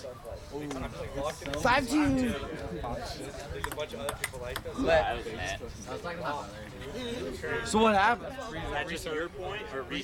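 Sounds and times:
table tennis ball clicking: 3.6s - 4.7s.

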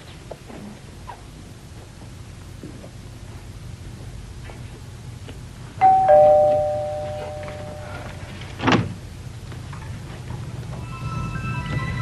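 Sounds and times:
two-tone doorbell chime: 5.8s - 8.2s.

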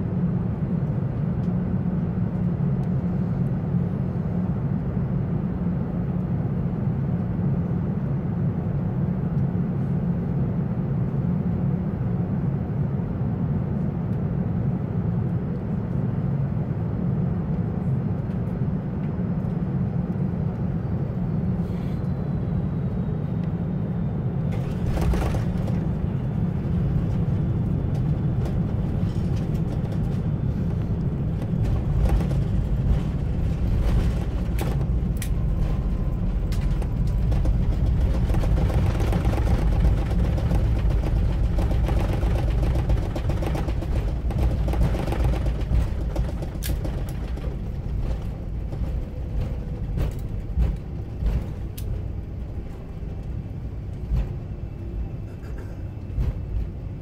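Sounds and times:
jet cabin engine and airflow noise: 0.0s - 57.0s.

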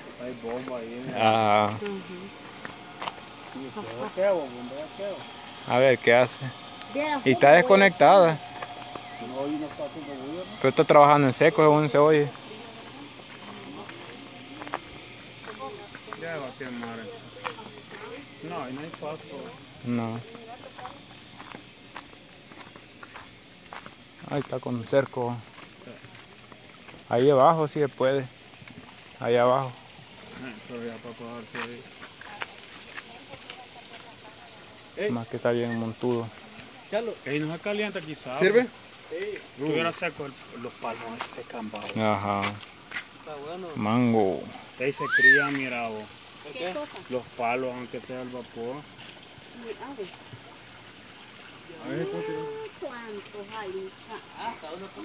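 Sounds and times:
low outdoor background: 0.0s - 55.0s
running water: 0.0s - 55.0s
footsteps on dirt road: 0.3s - 0.9s, 1.6s - 4.1s, 8.4s - 10.4s, 12.2s - 19.0s, 20.6s - 27.0s, 41.2s - 43.2s
person talking: 51.8s - 52.8s.

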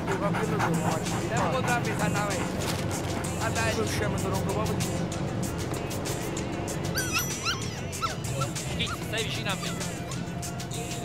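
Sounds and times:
music: 0.0s - 11.0s
short high yelps: 6.9s - 9.0s.

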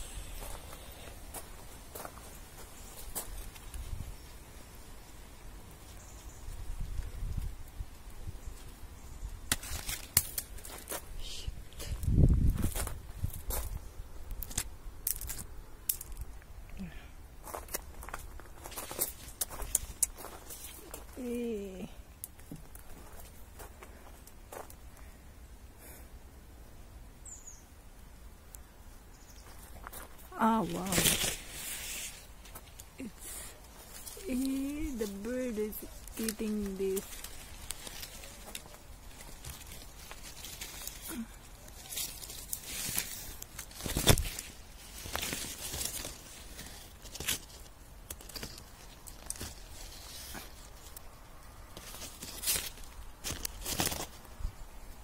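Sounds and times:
footsteps on grass and leaves: 0.0s - 4.2s, 9.5s - 16.3s, 17.4s - 21.8s, 22.4s - 24.8s, 29.4s - 54.4s
sharp clicks and crackles: 35.9s - 51.1s.

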